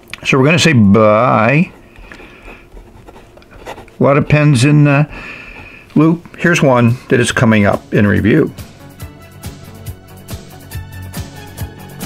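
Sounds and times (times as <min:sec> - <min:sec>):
fountain pen scratching on paper: 0:01.6 - 0:04.6.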